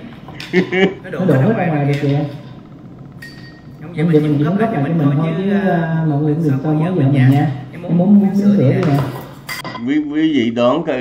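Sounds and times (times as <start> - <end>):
cutlery clattering against dishes: 8.8 - 9.8
sharp tableware clink: 8.9 - 9.8.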